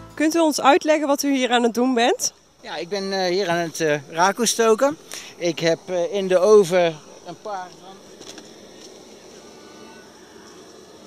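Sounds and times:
gas burner rushing hiss: 1.3s - 11.0s.

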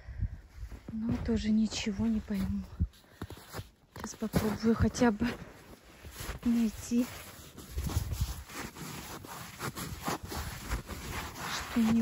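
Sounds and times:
boots crunching in snow: 0.7s - 12.0s.

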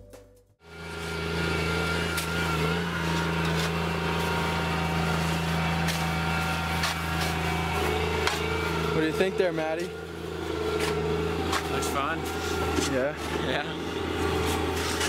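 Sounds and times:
heavy machinery drone: 0.6s - 15.0s
shovels scraping snow: 2.1s - 8.4s, 10.7s - 13.6s, 14.2s - 15.0s.

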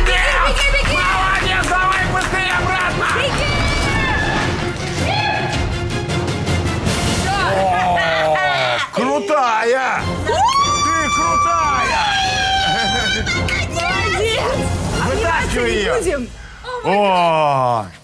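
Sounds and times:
background music: 0.0s - 18.0s
women shouting and screaming: 3.3s - 5.6s, 7.2s - 9.4s, 10.2s - 14.6s
long high scream: 10.3s - 13.1s.

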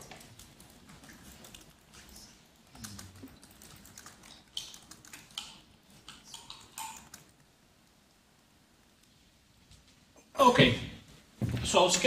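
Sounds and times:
keyboard and mouse clicks: 0.0s - 7.4s.

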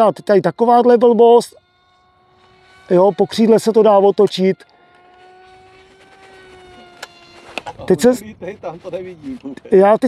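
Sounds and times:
small electric motor buzzing whine: 0.0s - 10.0s.

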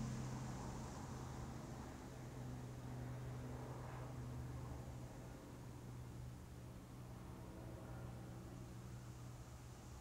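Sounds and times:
faint hiss: 0.0s - 10.0s.

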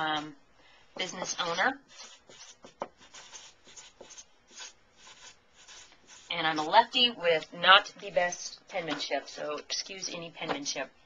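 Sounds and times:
marker scratching on paper: 1.0s - 6.7s.

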